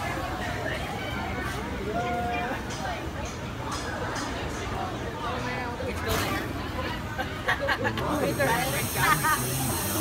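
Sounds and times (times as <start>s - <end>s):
people talking: 0.0s - 10.0s
compressed air hissing: 8.2s - 10.0s.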